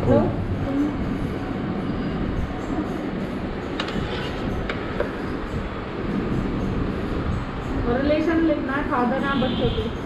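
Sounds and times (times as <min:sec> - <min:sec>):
steady rumbling background noise: 0:00.0 - 0:10.0.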